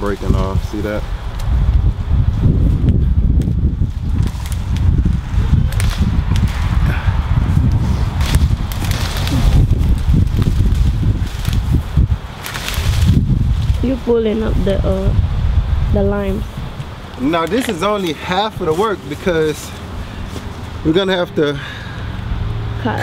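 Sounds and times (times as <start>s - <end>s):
wind buffeting microphone: 0.0s - 21.3s
rustling stalks and leaves: 0.0s - 23.0s.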